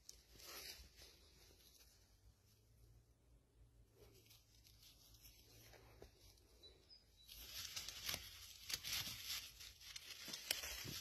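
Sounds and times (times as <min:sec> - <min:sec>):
footsteps on dry leaves: 0:00.2 - 0:01.7, 0:07.3 - 0:11.0.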